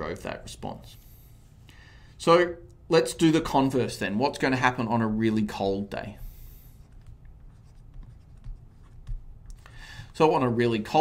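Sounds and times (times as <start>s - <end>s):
pen scratching on paper: 6.8s - 9.2s.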